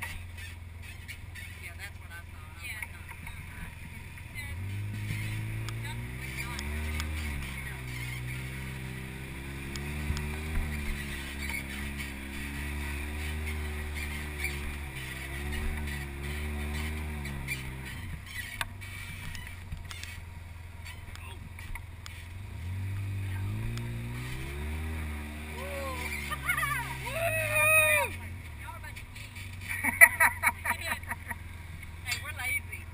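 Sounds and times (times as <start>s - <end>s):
engine running under load: 0.0s - 32.9s.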